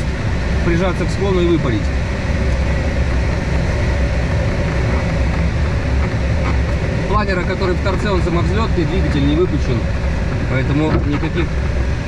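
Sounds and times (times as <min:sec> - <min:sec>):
low rumble: 0:00.0 - 0:12.0
rushing airflow in cockpit: 0:00.0 - 0:12.0.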